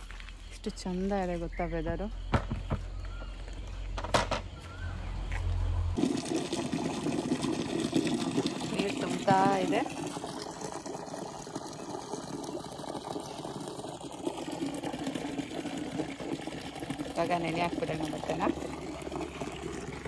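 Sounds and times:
water running into bucket: 6.0 - 20.0.

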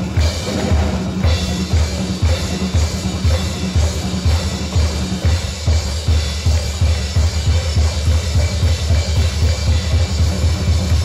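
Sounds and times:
bass drum beating: 0.0 - 11.0
live band music: 0.0 - 11.0.

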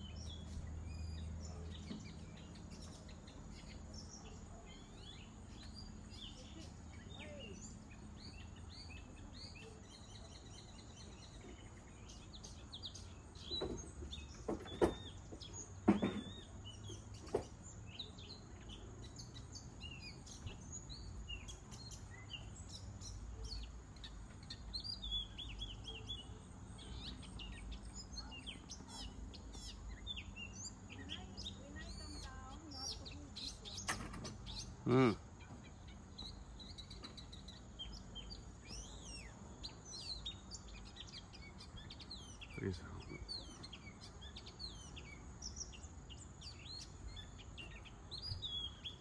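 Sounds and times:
small birds chirping: 0.0 - 49.0.

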